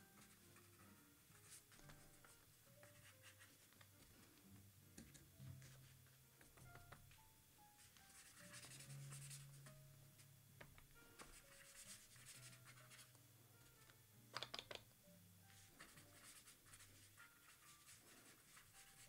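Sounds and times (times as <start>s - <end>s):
slow background music: 0.0s - 19.0s.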